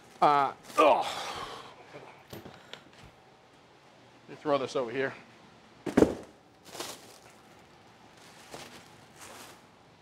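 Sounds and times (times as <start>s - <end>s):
cardboard box thump: 5.9s - 6.3s.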